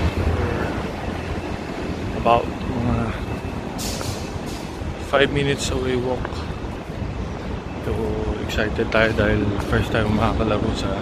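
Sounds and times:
road traffic rumble: 0:00.0 - 0:11.0
wind on microphone: 0:00.0 - 0:11.0.

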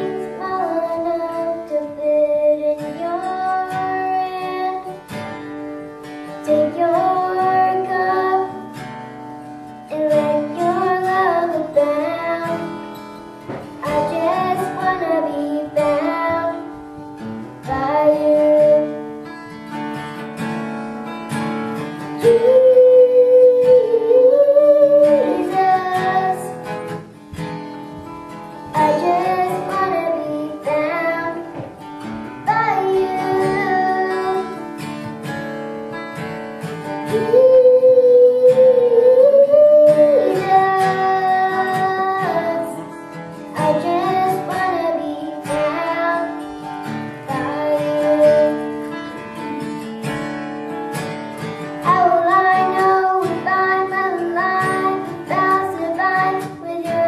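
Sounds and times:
girl singing into a microphone: 0:00.0 - 0:20.2, 0:21.4 - 0:50.2, 0:51.0 - 0:57.0
strummed acoustic guitar: 0:00.0 - 0:57.0.

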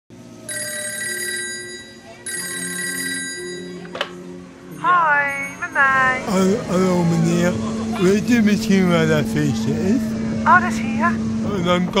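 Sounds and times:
telephone ringing: 0:00.4 - 0:04.0.

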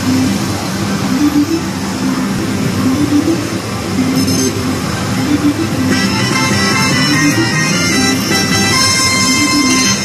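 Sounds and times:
gaming machine noise: 0:00.0 - 0:10.0
tune of short stepping notes: 0:01.0 - 0:10.0.

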